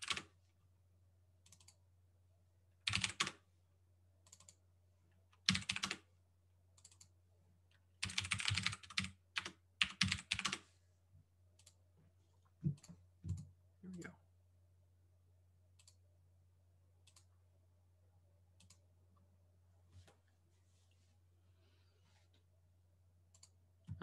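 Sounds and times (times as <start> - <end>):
keyboard typing: 0.0 - 0.3, 1.4 - 1.8, 2.8 - 3.4, 4.2 - 4.6, 5.4 - 6.1, 6.8 - 7.1, 8.0 - 10.6.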